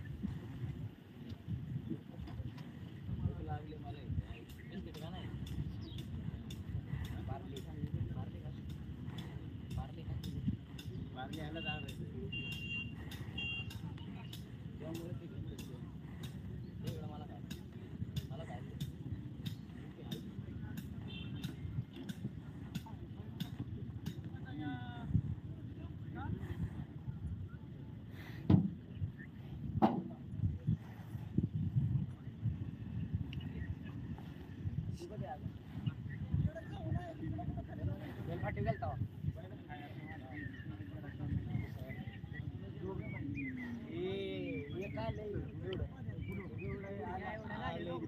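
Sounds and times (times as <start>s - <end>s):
muffled voices: 0.0s - 48.0s
steady low rumble: 0.0s - 48.0s
wind buffeting microphone: 0.0s - 48.0s.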